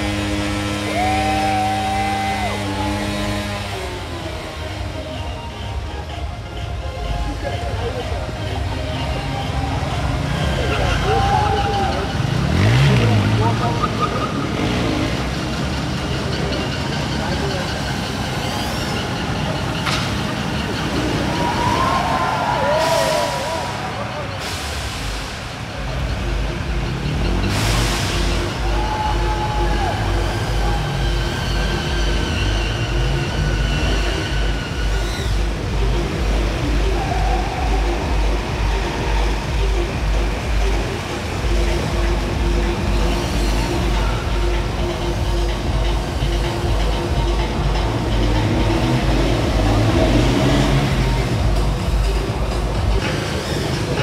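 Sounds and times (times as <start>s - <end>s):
pulsing music beat: 0.0s - 23.8s, 24.5s - 54.0s
crowd din: 0.0s - 54.0s
motorcycles revving: 0.0s - 54.0s.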